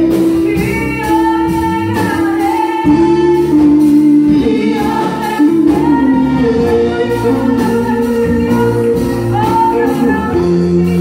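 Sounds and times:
drums: 0.0 - 11.0
electric guitar: 0.0 - 11.0
keyboard: 0.0 - 11.0
woman singing gospel song: 0.0 - 11.0.

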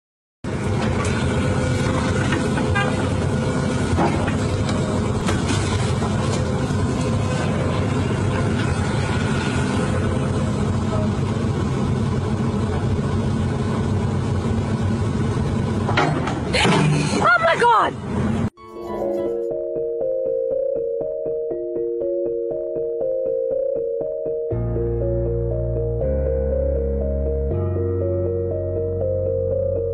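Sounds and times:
excavator diesel engine running: 0.5 - 19.5.

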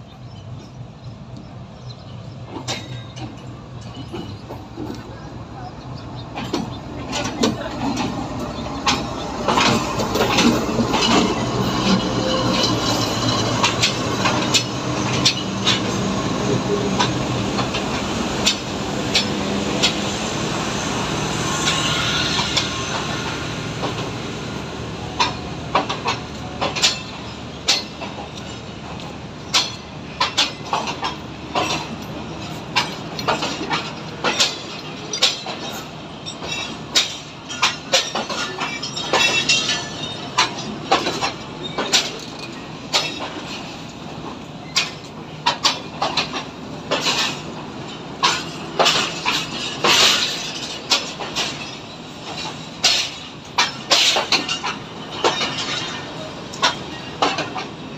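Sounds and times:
diesel locomotive engine: 0.0 - 57.9
train wheels clacking over rail joints: 0.0 - 57.9.

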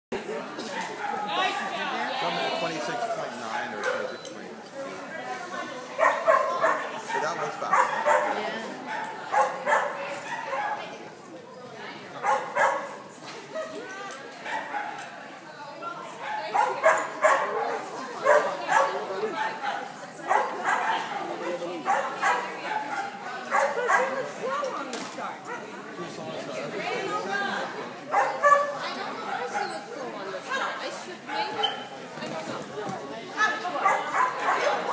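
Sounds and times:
people's voices: 0.1 - 34.9
dog barking and yipping: 6.0 - 10.8, 33.8 - 34.9.

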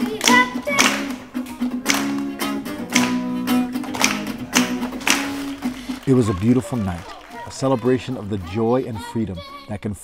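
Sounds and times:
acoustic guitar strummed: 0.0 - 5.9.

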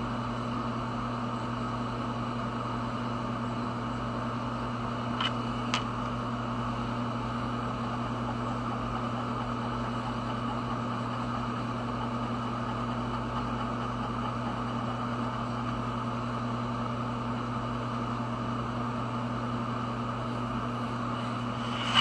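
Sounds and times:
machine hum with whine: 0.0 - 22.0.

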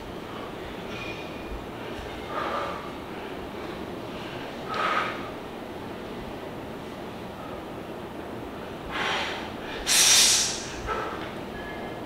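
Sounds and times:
man forcefully exhaling: 8.9 - 11.2.

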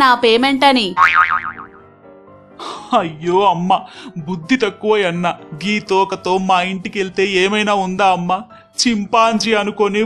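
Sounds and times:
cartoon boing: 1.0 - 1.9.

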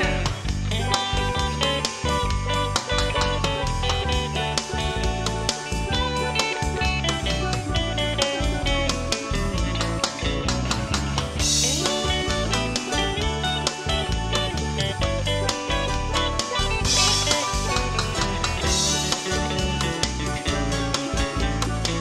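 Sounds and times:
country blues band playing: 0.0 - 22.0
guitar: 0.0 - 22.0.

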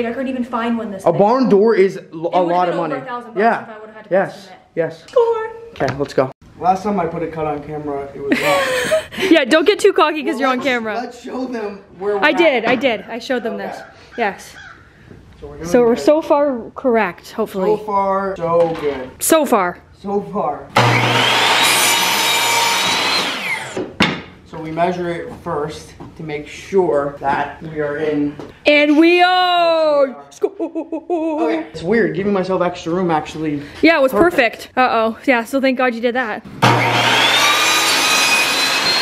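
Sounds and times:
miter saw motor whine: 20.8 - 23.8, 36.6 - 39.0
saw blade rasping through wood: 20.8 - 23.8, 36.6 - 39.0.

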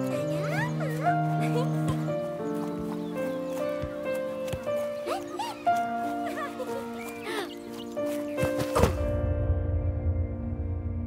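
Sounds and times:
soft film score music: 0.0 - 11.0.

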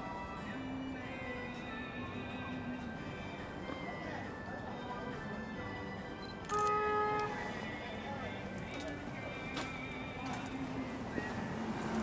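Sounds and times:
background music: 0.0 - 12.0
car horn toot: 6.5 - 7.4.

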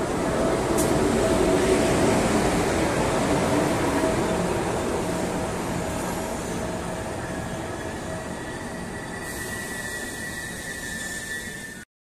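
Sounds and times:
train wheels rumbling on rails: 0.0 - 11.8
high steady squeal: 7.1 - 11.9.

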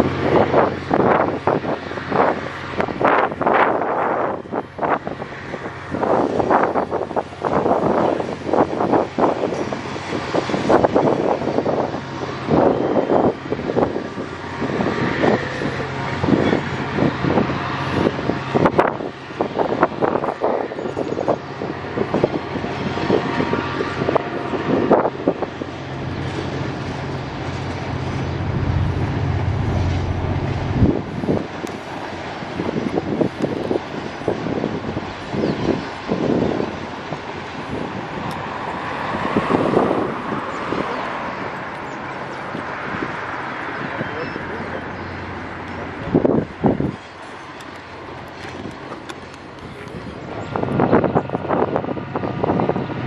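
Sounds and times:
low train hum: 0.0 - 53.0
wind on microphone: 0.0 - 53.0.

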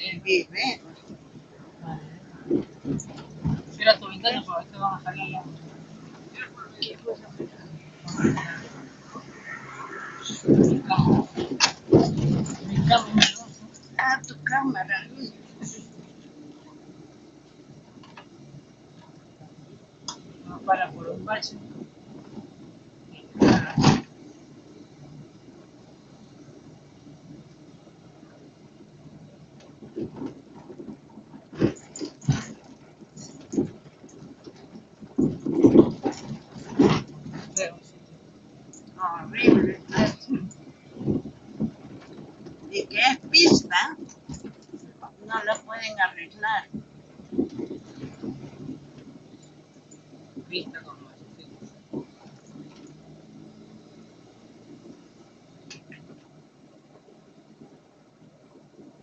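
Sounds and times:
car running from inside cabin: 0.0 - 59.0
tyre and road noise: 0.0 - 59.0.

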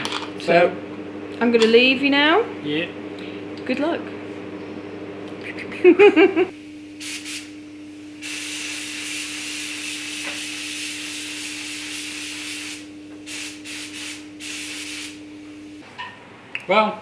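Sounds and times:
steady hum: 0.0 - 15.9
spray gun hissing: 7.0 - 7.5, 8.2 - 15.2.

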